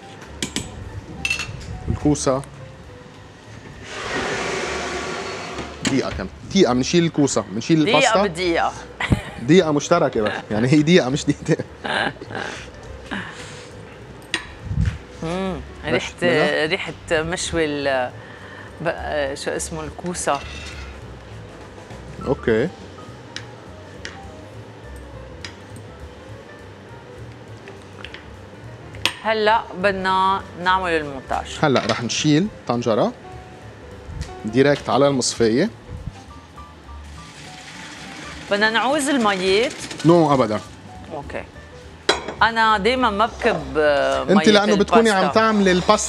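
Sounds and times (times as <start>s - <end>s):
soft background music: 0.0s - 46.0s.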